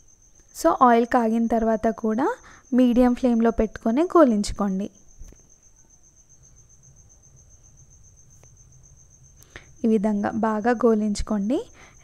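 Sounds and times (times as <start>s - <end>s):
faint low background hum: 0.0s - 12.0s
high-pitched insect trill: 0.0s - 12.0s.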